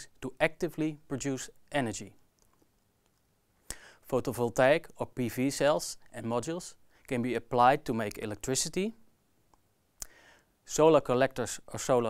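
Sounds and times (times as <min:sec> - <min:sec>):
man speaking: 0:00.0 - 0:02.2, 0:04.0 - 0:09.1, 0:10.6 - 0:12.0.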